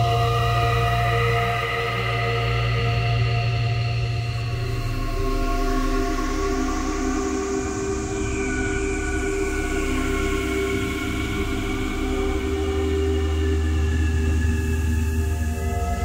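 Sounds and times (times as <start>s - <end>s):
ambient synthesizer drone: 0.0s - 16.0s.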